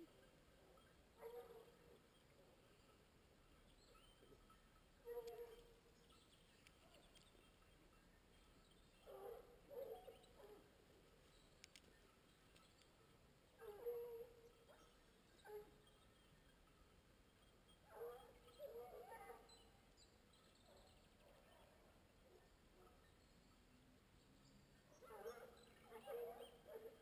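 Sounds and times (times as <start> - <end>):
distant hounds baying: 0.0 - 11.3, 13.5 - 16.3, 17.4 - 23.2, 24.9 - 27.0.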